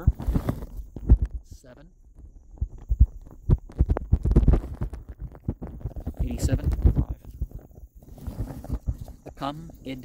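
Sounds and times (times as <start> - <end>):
low thumps and rumbling: 0.0 - 10.0.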